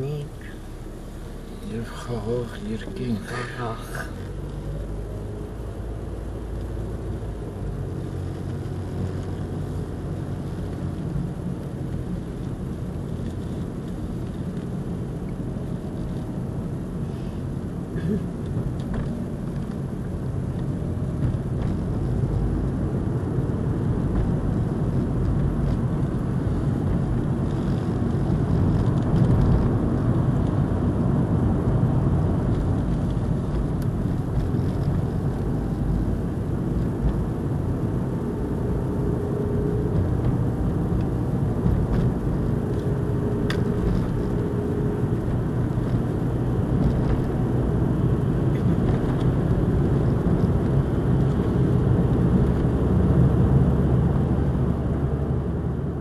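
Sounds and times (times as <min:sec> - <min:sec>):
car interior road rumble: 0:00.0 - 0:56.0.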